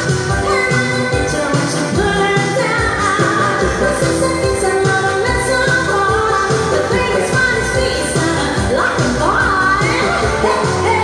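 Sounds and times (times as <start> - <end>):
pop backing music with beat: 0.0 - 11.0
woman singing into microphone: 0.3 - 11.0.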